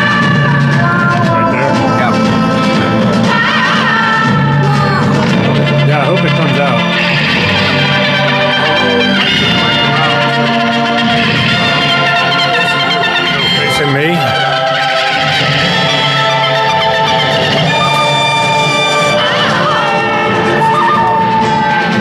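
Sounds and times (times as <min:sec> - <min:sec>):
song with singing and guitar: 0:00.0 - 0:22.0.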